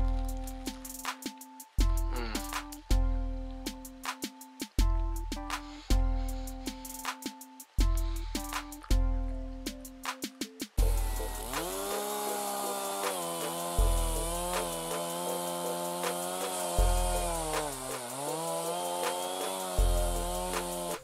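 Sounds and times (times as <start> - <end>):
background music with deep bass: 0.0 - 21.0
small engine running: 10.8 - 21.0.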